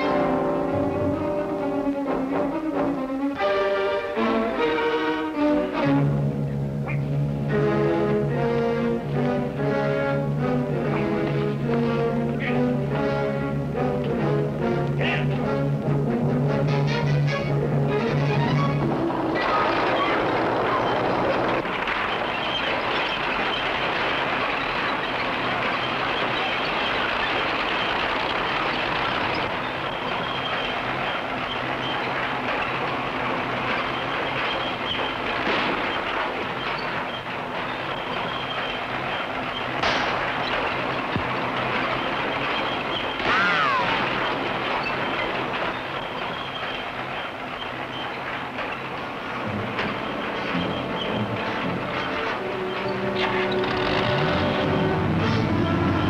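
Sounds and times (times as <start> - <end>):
bulldozer running: 0.0 - 56.0
tracks clattering: 0.0 - 56.0
sharp knocks: 18.4 - 47.4
short falling squeal: 33.7 - 40.8, 41.8 - 48.2, 49.9 - 51.4.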